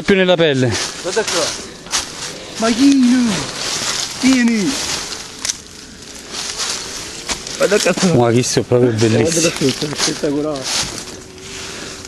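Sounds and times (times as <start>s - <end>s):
rustling in dry leaves: 0.0s - 12.0s.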